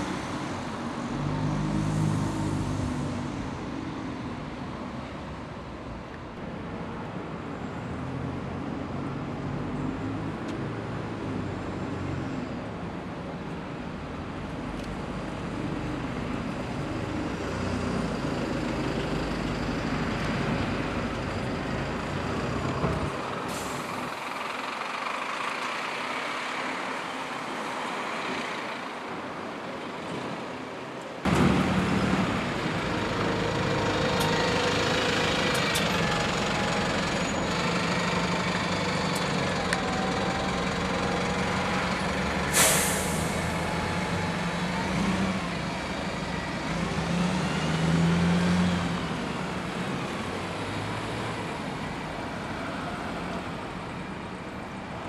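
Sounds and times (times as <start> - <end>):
bus engine pulling away: 0.0 - 55.0
traffic on street: 0.0 - 55.0
air brakes hiss: 23.4 - 24.2, 42.5 - 43.6.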